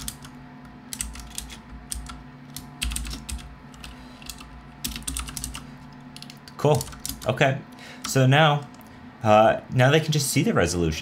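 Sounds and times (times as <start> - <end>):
typing on computer keyboard: 0.0 - 7.3.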